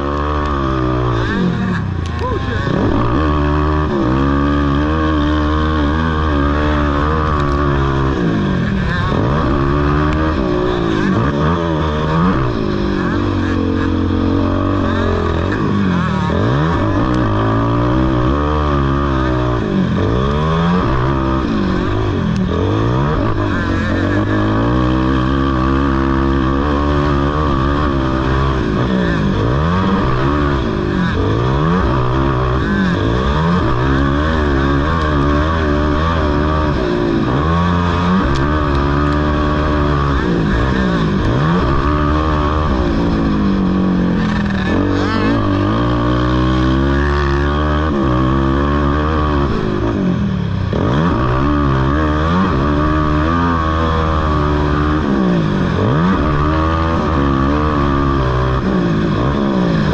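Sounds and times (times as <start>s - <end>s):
quad engine revving hard: 0.0s - 59.9s.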